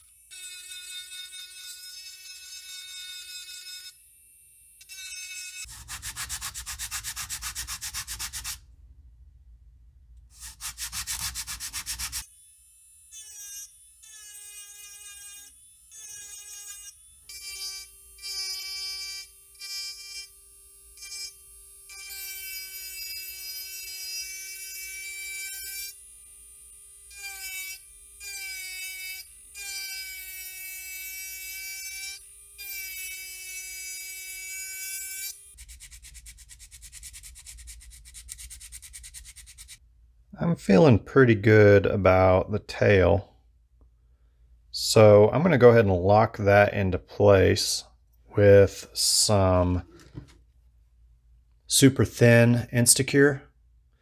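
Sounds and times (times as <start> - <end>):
rotary tool high whine: 0.0 - 7.5, 10.4 - 39.8
rotary tool grinding wood: 4.8 - 8.6, 10.3 - 20.3, 21.0 - 39.8.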